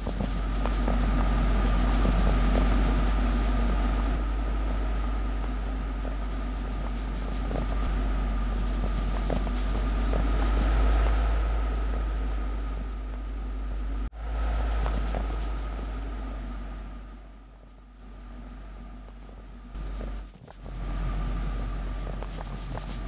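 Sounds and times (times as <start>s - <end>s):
low rumbling drone: 0.0s - 23.0s.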